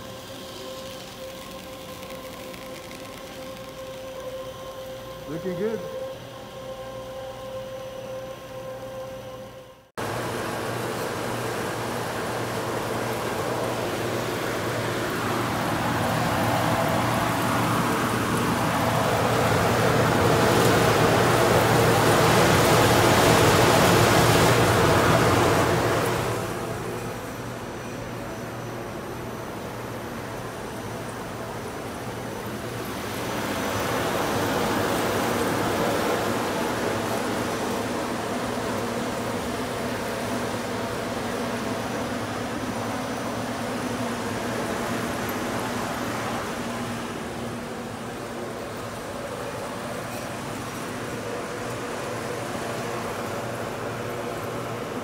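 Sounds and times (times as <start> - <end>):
machine hum: 0.0 - 55.0.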